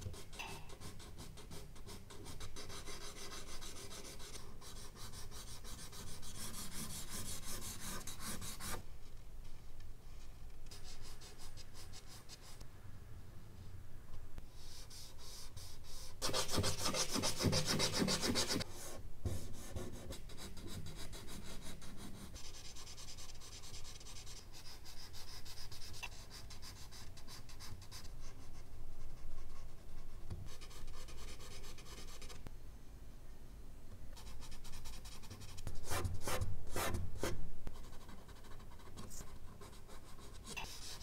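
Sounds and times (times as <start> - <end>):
charcoal scratching on paper: 14.7 - 18.6.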